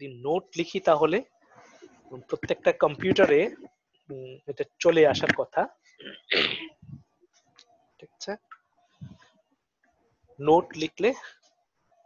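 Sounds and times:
person sneezing: 6.3s - 6.8s.

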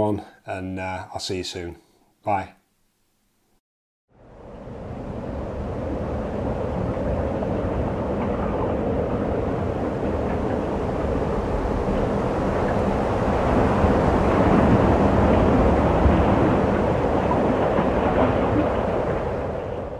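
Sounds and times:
wind blowing across microphone: 4.2s - 19.9s.

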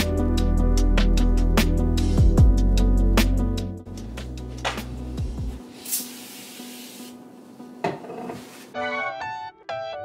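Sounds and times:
soft background music: 0.0s - 10.0s
cleaner spray hiss: 5.6s - 7.2s
cloth rubbing a mirror: 8.2s - 8.7s.

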